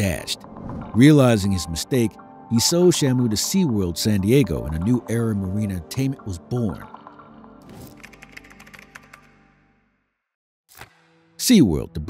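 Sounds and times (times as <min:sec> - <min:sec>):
soft background music: 0:00.0 - 0:09.8, 0:10.8 - 0:12.0.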